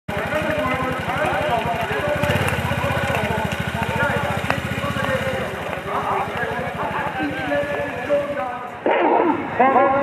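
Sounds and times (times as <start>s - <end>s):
quad bike engine idling: 0.1s - 8.8s
voices talking: 0.1s - 10.0s.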